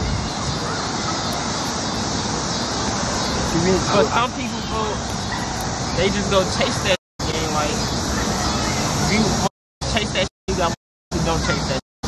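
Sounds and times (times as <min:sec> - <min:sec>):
steady rushing noise: 0:00.0 - 0:11.8.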